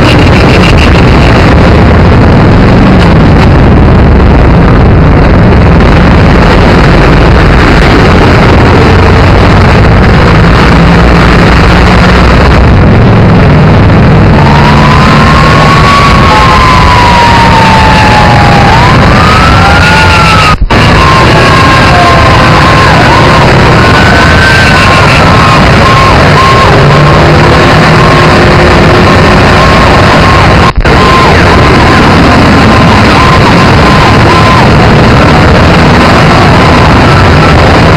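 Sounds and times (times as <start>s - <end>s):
emergency sirens wailing: 0.0s - 37.9s
interrupted steady tone: 0.0s - 37.9s
steady rush of noise: 0.0s - 37.9s.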